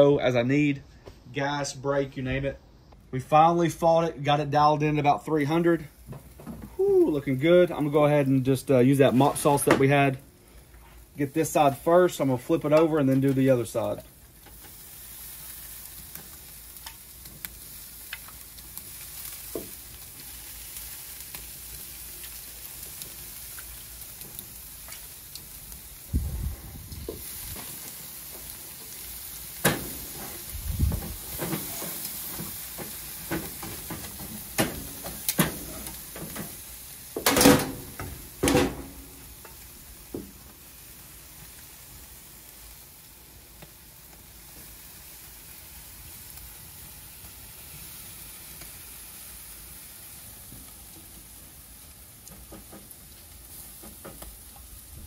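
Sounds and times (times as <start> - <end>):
ribs sizzling on a grill: 3.6 - 55.0
tongs and pot clinking on grate: 31.3 - 36.6.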